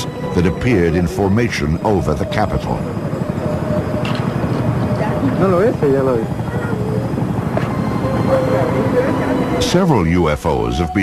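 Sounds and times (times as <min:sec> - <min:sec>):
people talking: 0:00.0 - 0:03.0, 0:04.9 - 0:07.3, 0:08.0 - 0:11.0
helicopter rotor beat: 0:00.0 - 0:11.0.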